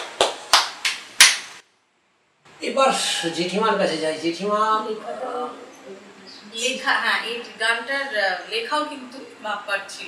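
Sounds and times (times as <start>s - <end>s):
man clapping hands: 0.0s - 1.5s.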